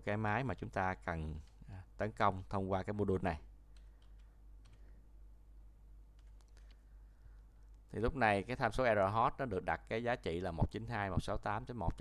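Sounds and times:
keyboard typing clicks: 0:03.7 - 0:04.9, 0:06.1 - 0:06.8.

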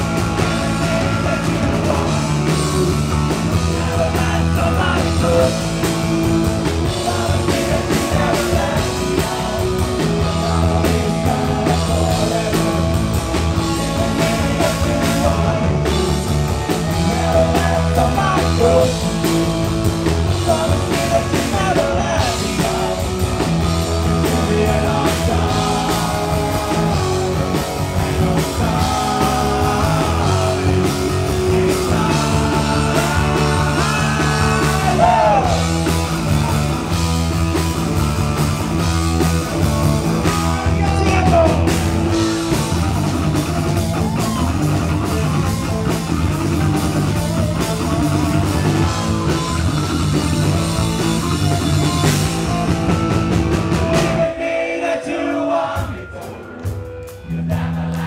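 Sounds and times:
man singing: 0:00.0 - 0:36.8, 0:40.1 - 0:42.7, 0:53.6 - 0:56.7
electric guitars: 0:00.0 - 0:54.5, 0:55.6 - 0:58.0
drum kit: 0:00.0 - 0:54.7, 0:55.6 - 0:58.0
bass guitar: 0:00.0 - 0:58.0.

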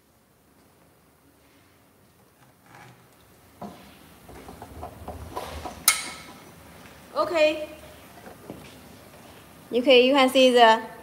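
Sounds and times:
metal plate clanking: 0:04.3 - 0:06.6.

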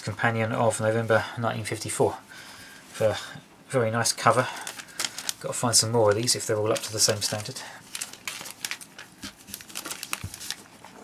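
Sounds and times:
plastic bag crinkling: 0:04.6 - 0:11.0.

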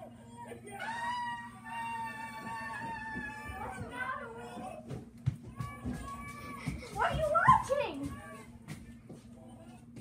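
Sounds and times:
child wailing: 0:00.4 - 0:04.9, 0:05.5 - 0:06.8.

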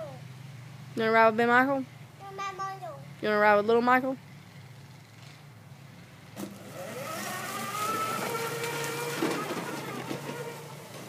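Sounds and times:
motor whine: 0:06.3 - 0:11.0.

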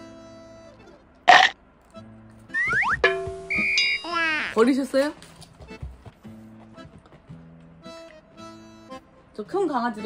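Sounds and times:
soft background music: 0:00.0 - 0:10.0
rising cartoon whistle effect: 0:02.5 - 0:04.1.

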